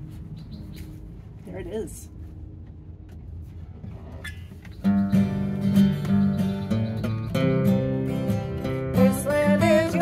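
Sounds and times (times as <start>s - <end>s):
acoustic guitars strumming: 3.9s - 10.0s.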